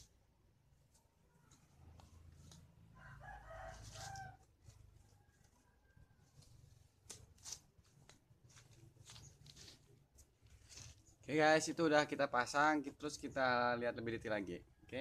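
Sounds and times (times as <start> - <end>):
soft rustles: 0.8 - 11.3
distant rooster crowing: 2.8 - 6.6.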